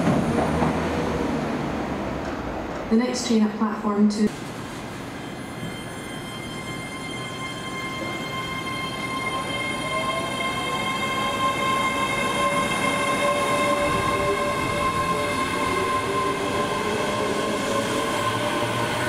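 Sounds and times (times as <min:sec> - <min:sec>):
electric train whine: 0:04.4 - 0:19.0.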